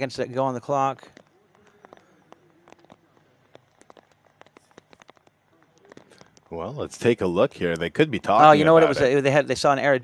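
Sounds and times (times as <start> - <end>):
raindrops ticking on a surface: 0.0 - 8.4
faint distant voices: 0.0 - 9.2.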